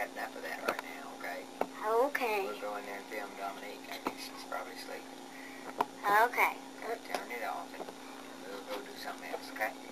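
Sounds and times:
steady hum: 0.0s - 9.9s.

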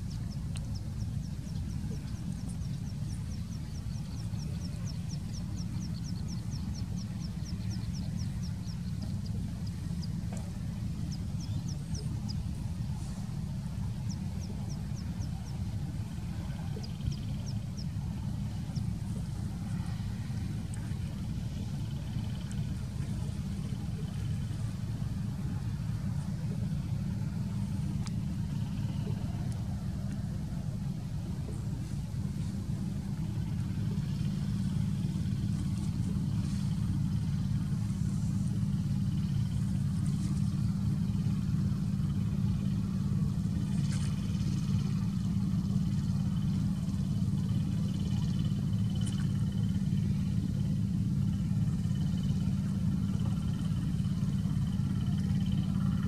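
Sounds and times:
low rumble: 0.0s - 56.0s
faint clicks: 0.2s - 0.8s, 28.0s - 28.2s, 48.9s - 49.3s.

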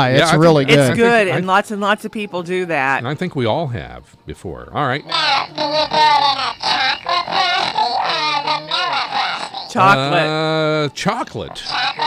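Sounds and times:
voice warbling gibberish: 5.0s - 10.8s, 11.5s - 12.0s.

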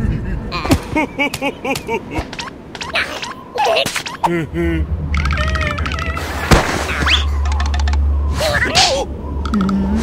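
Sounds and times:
blizzard wind rumble: 0.0s - 2.7s
cartoon gliding vocal noises: 2.8s - 7.3s.

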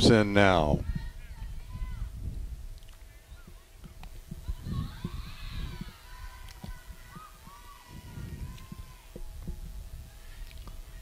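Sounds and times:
distant voices calling out: 0.0s - 11.0s.

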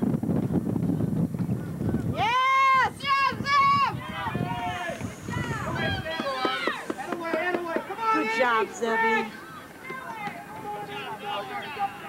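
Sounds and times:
people talking and calling out: 2.1s - 12.0s.

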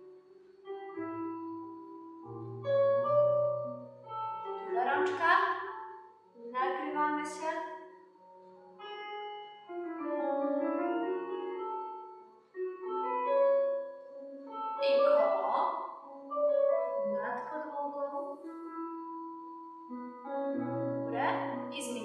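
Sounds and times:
classical piano music: 0.0s - 22.0s.

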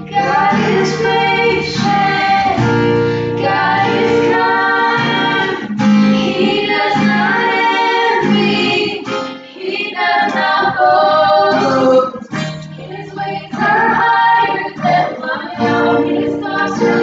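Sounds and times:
acoustic guitar strumming: 0.0s - 17.0s
women singing: 0.0s - 17.0s.

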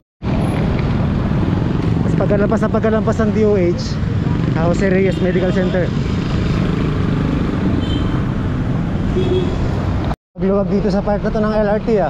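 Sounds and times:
road traffic rumble: 0.2s - 12.0s.

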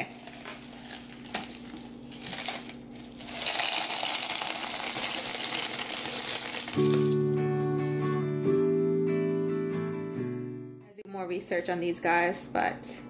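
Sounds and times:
clay pebbles clattering into glass: 0.3s - 7.0s
acoustic guitar music: 6.7s - 11.0s.

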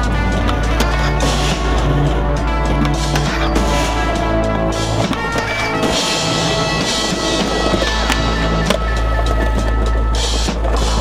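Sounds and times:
backing song: 0.0s - 11.0s
skateboard wheels rolling on stone: 0.0s - 11.0s.

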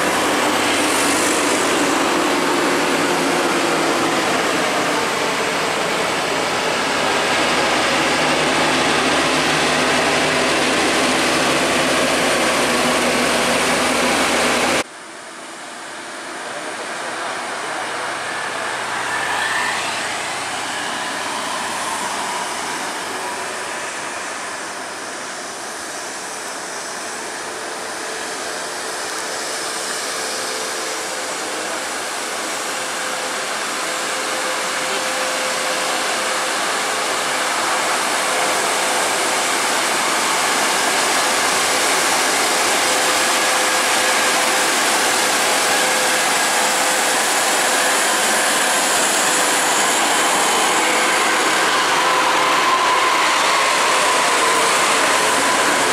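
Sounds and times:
bus diesel engines climbing: 0.0s - 14.9s, 16.2s - 55.9s.

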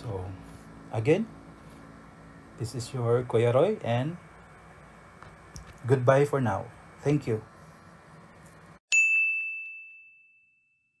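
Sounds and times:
high bell-like chime: 8.9s - 11.0s.

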